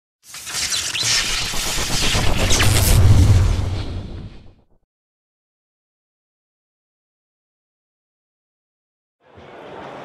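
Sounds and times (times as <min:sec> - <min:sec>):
sweep of noise: 0:00.2 - 0:04.7
deep boom: 0:01.5 - 0:04.7.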